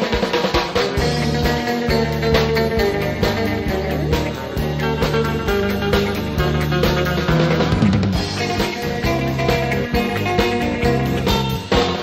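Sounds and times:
band music: 0:00.0 - 0:12.0
drum kit beat: 0:00.0 - 0:12.0
low bass notes: 0:01.0 - 0:12.0.

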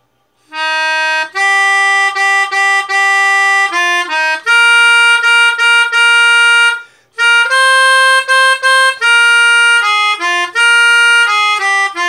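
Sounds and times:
melodica playing hymn melody: 0:00.5 - 0:12.0.

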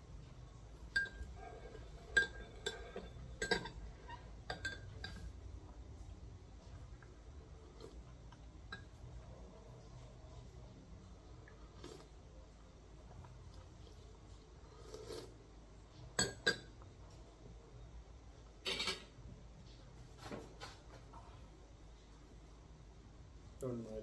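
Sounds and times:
low steady hum: 0:00.0 - 0:24.0
cutlery clatter: 0:02.1 - 0:03.8, 0:18.6 - 0:19.2
cutlery clinking on plate: 0:02.1 - 0:03.8, 0:18.6 - 0:19.2.

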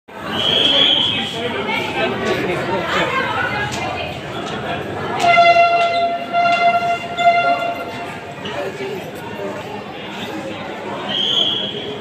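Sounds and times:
loud steady horn tone: 0:05.2 - 0:08.3.

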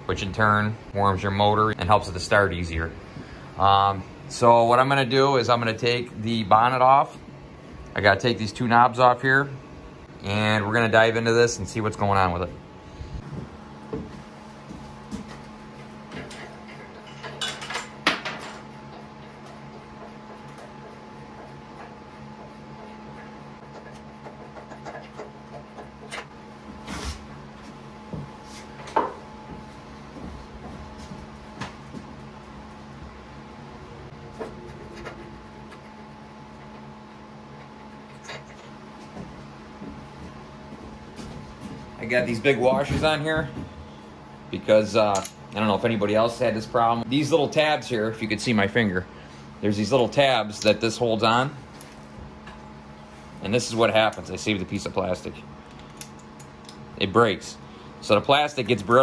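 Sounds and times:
faint hum: 0:00.0 - 0:59.0.

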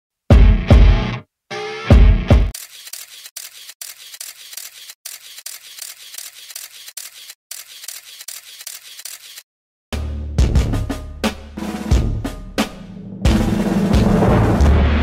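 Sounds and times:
camera shutter clicks: 0:02.6 - 0:09.4
loud music: 0:10.0 - 0:15.0.

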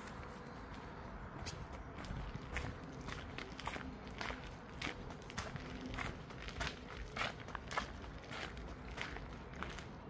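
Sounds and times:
footsteps walking: 0:00.0 - 0:10.0.

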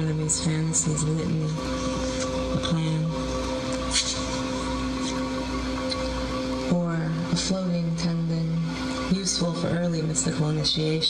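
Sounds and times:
held drone note: 0:00.0 - 0:11.0
low rumble and hiss: 0:00.0 - 0:11.0.

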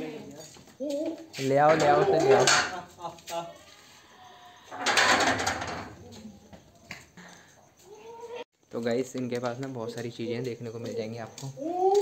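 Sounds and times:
goat bleating: 0:07.8 - 0:08.4.

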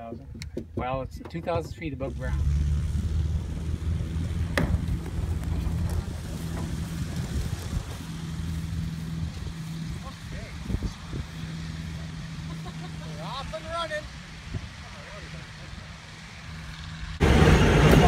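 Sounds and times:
propeller plane engine droning: 0:01.5 - 0:18.0.

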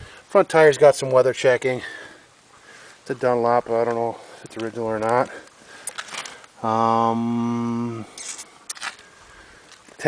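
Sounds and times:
faint handling clicks and rustles: 0:02.3 - 0:06.6, 0:08.2 - 0:10.0.

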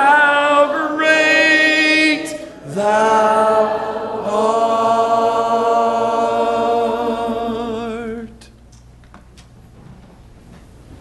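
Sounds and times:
congregation singing a hymn: 0:00.0 - 0:08.4.

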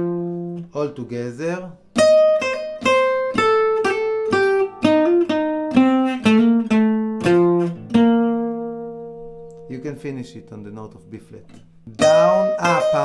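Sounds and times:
jazz guitar lick: 0:00.0 - 0:00.8, 0:01.8 - 0:13.0.

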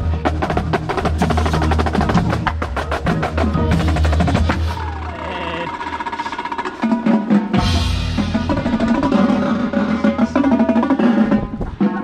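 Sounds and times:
percussion ensemble playing: 0:00.0 - 0:12.0.

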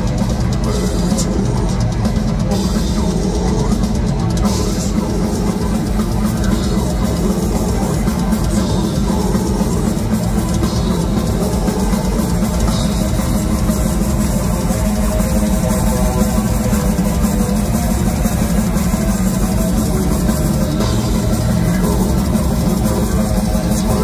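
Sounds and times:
bass guitar: 0:00.0 - 0:24.0
distorted electric guitars: 0:00.0 - 0:24.0
drum kit playing: 0:00.0 - 0:24.0.

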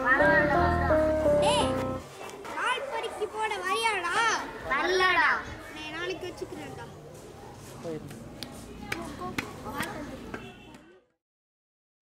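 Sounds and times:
boys' voices: 0:02.4 - 0:07.1, 0:07.8 - 0:11.0.

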